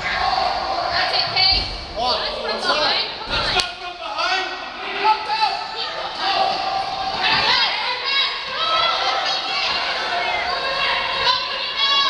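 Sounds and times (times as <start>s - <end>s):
voices shouting in arena: 0.0s - 12.0s.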